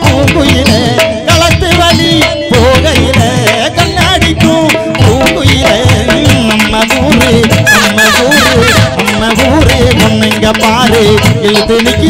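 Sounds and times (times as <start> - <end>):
folk band playing: 0.0 - 11.9
sharp drum strokes: 0.0 - 12.0.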